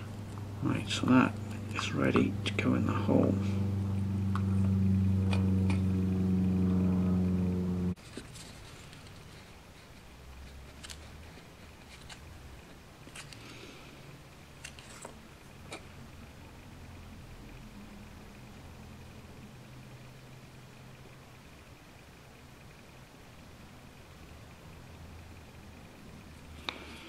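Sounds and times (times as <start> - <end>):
loud low hum with overtones: 0.0 - 8.0, 10.0 - 27.0.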